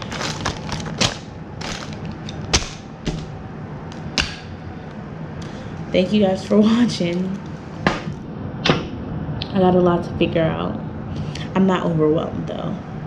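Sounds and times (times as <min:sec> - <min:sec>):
plastic packaging crinkling: 0:00.0 - 0:03.4.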